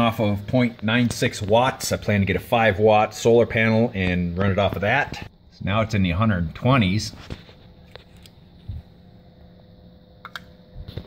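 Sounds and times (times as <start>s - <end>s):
small fan humming: 0.0s - 11.0s.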